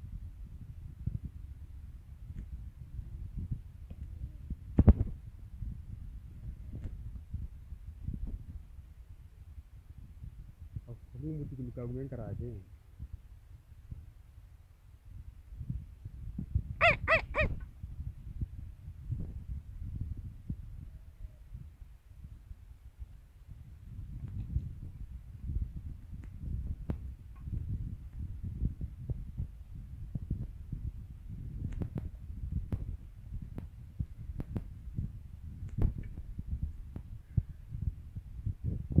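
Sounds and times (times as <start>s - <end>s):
wind rumble on microphone: 0.0s - 39.0s.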